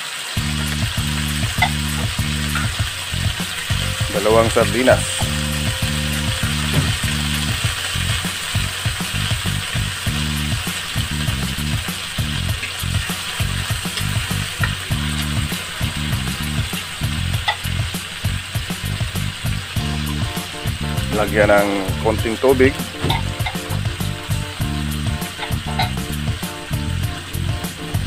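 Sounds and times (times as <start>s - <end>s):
fish sizzling in a wok: 0.0s - 4.3s, 5.0s - 28.0s.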